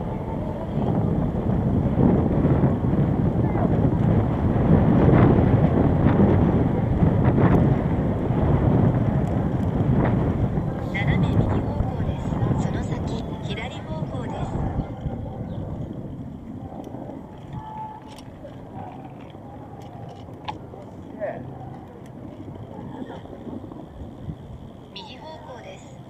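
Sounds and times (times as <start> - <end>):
low rumble: 0.0 - 26.0
passers-by talking: 0.0 - 26.0.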